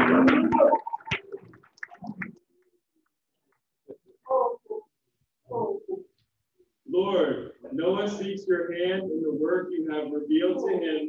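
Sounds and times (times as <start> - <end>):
scattered applause: 0.0 - 2.4.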